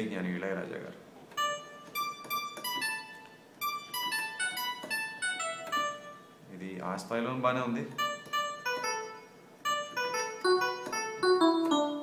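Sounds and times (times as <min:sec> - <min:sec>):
piano-like keyboard melody: 0:01.3 - 0:06.4, 0:08.0 - 0:12.0.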